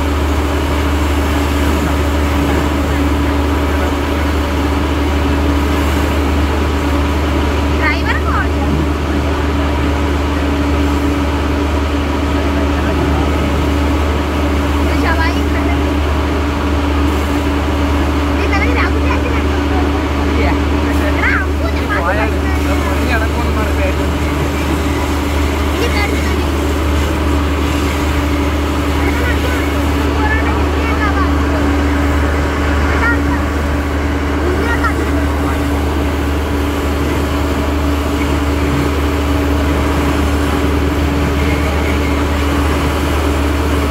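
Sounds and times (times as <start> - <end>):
fire engine motor droning: 0.0 - 43.9
pump hum: 0.0 - 43.9
people talking: 1.0 - 43.9.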